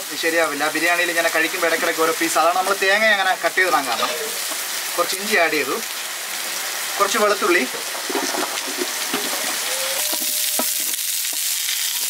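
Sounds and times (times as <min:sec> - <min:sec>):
pot sizzling: 0:00.0 - 0:12.0
person speaking: 0:00.1 - 0:05.8.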